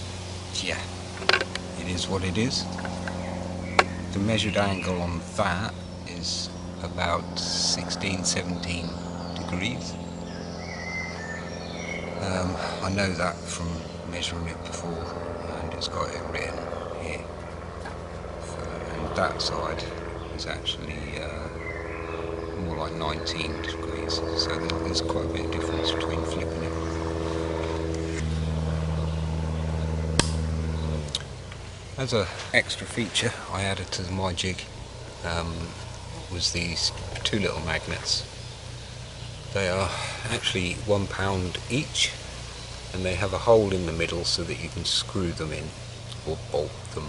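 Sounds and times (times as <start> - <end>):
birds whistling: 0.0 - 47.0
low background hum: 0.0 - 47.0
sharp click: 30.2 - 30.4.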